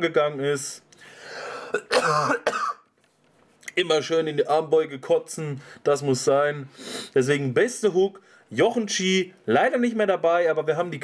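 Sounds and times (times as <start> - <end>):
man coughing hard: 1.5 - 2.8
man clearing throat: 1.6 - 2.8.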